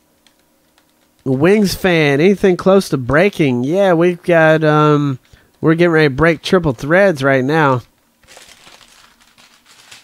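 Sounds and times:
packaging crinkling: 0:08.2 - 0:10.0.

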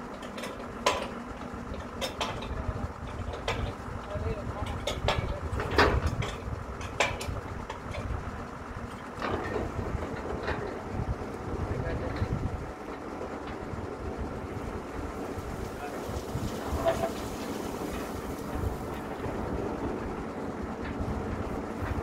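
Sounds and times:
drilling rig droning: 0:00.0 - 0:22.0.

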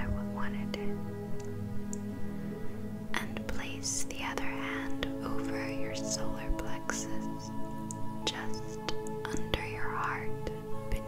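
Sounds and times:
person whispering softly: 0:00.0 - 0:01.0, 0:03.2 - 0:07.5, 0:08.3 - 0:11.0
gentle ambient music: 0:00.0 - 0:11.0.

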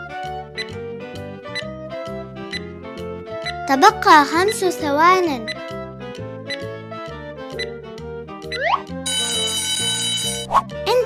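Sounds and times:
children's background music: 0:00.0 - 0:11.0
countdown ticking: 0:03.4 - 0:06.7, 0:08.4 - 0:10.5
alarm-clock bell ringing: 0:09.1 - 0:10.5.

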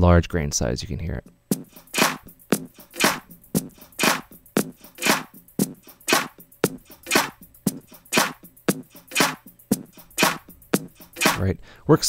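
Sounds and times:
granular drum loop: 0:01.2 - 0:11.4.

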